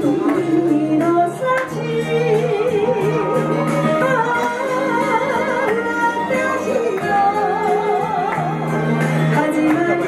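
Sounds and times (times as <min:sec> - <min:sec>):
instrumental backing: 0:00.0 - 0:10.0
woman singing with vibrato: 0:00.0 - 0:10.0.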